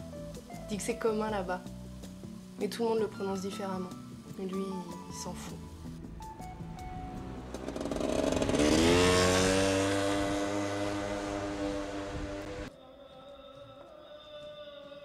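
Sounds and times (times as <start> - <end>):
engine revving: 5.9 - 12.7.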